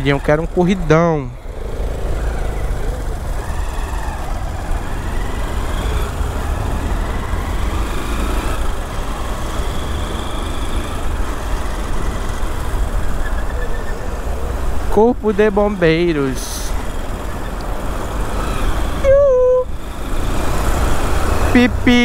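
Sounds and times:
motorcycle engine at low speed: 0.0 - 22.0
road and wind rumble: 0.0 - 22.0
traffic noise: 0.0 - 22.0.

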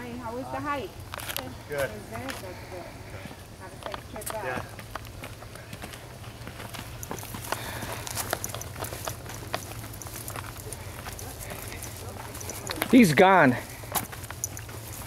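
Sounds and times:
footsteps on dirt and dead leaves: 4.2 - 15.0.

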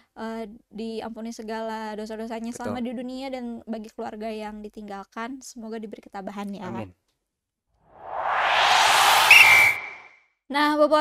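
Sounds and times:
rushing whoosh: 7.9 - 10.1
short high whistle tone: 8.2 - 10.2.

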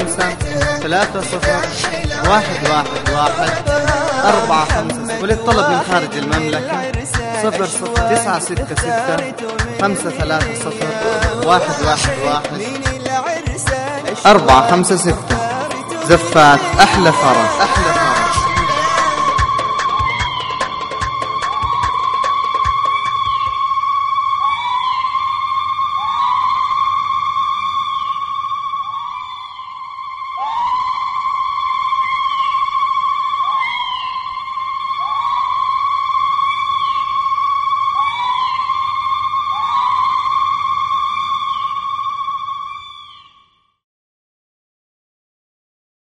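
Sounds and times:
high synthesizer tone with slides: 14.2 - 25.5.

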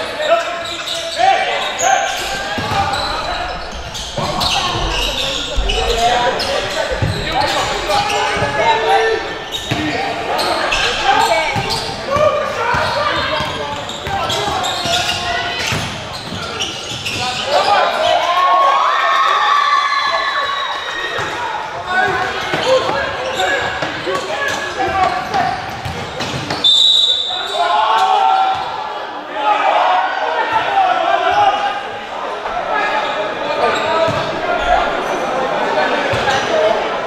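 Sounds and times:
indistinct shouts and chatter: 0.0 - 37.0
basketball bouncing on court: 4.0 - 8.6, 11.5 - 17.2, 25.0 - 26.6, 34.1 - 34.3.

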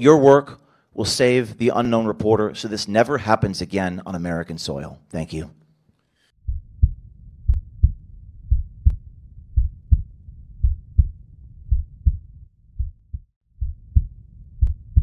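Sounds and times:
heartbeat double thumps: 6.4 - 15.0.

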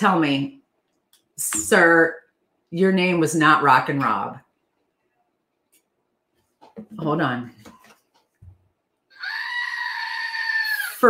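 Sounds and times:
toy goat scream: 9.1 - 11.0.

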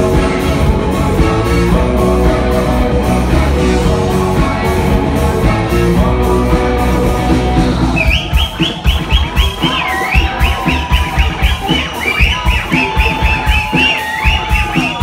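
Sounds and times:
live rock band with accordion: 0.0 - 15.0
kick drum beat: 8.0 - 15.0.

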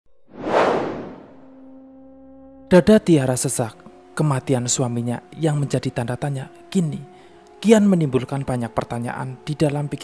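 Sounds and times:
whoosh sound effect: 0.3 - 1.4.

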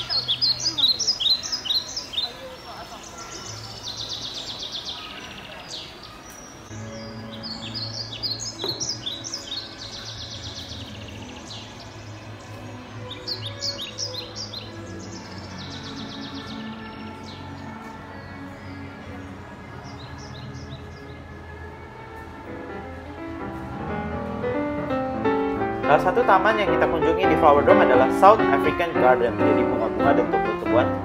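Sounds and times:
birds chirping and trilling: 0.0 - 31.0.

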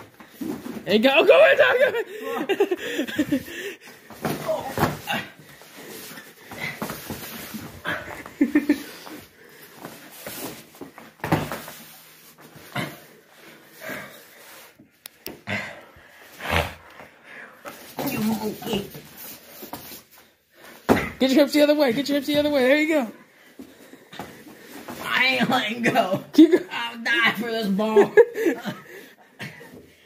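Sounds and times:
scuffling on foam mats: 3.2 - 12.8.

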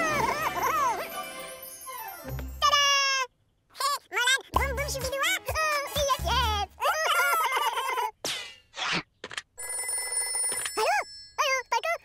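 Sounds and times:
high cartoon gibberish voices: 0.0 - 1.1, 2.6 - 8.2
cartoon telephone ringing: 9.6 - 11.7.

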